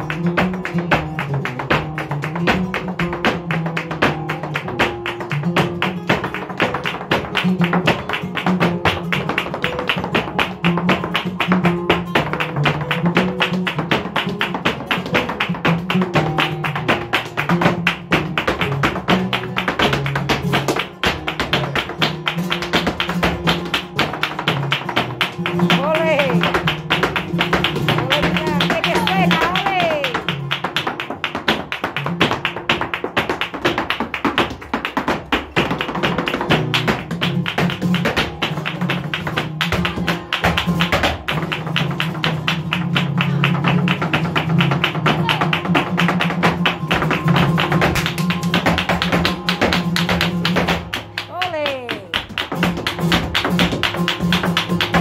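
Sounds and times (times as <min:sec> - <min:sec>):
flamenco footwork strikes: 0:00.0 - 0:55.0
flamenco guitar playing: 0:00.0 - 0:55.0
person calling out: 0:25.8 - 0:26.5, 0:28.0 - 0:30.2, 0:51.3 - 0:52.2.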